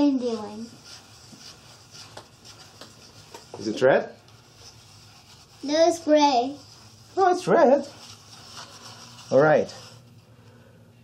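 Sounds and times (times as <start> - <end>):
brush rubbing in foam cup: 0.0 - 10.2.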